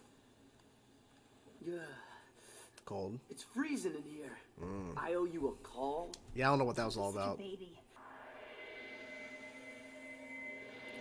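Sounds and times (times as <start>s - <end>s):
faint electronic drone: 8.0s - 11.0s.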